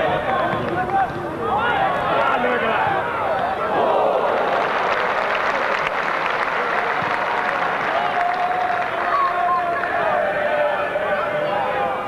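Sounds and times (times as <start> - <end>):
crowd voices: 0.0 - 12.0
crowd clapping: 4.2 - 10.2.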